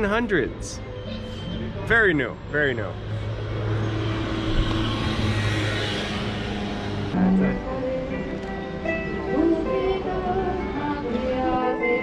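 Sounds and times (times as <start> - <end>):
vehicle engine hum: 2.5 - 10.6
tyre and engine noise: 2.7 - 8.6.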